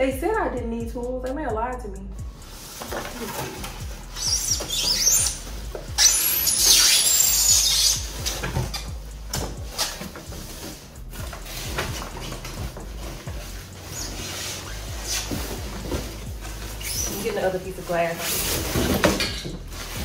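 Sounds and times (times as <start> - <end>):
cardboard rustling and scraping: 2.4 - 20.0.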